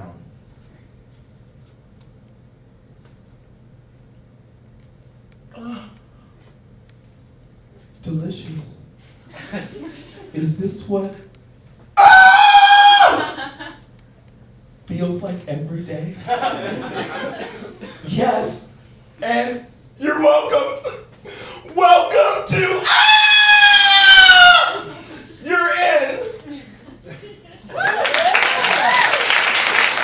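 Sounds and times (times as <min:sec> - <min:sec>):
man's falsetto yell: 0:12.0 - 0:13.2, 0:21.8 - 0:26.3.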